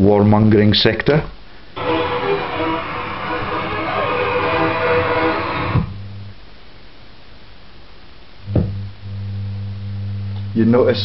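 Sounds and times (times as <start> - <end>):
steady low hum: 1.5 - 11.0
short thump: 8.5 - 8.8.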